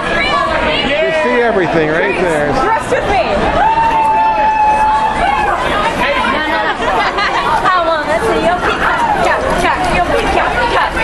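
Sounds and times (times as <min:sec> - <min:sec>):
crowd chatter in a hall: 0:00.0 - 0:11.0
excited voices talking over each other: 0:00.0 - 0:11.0.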